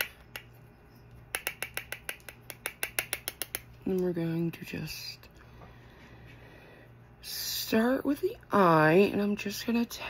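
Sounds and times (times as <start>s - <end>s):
brush tapping plastic jar: 1.3s - 4.0s.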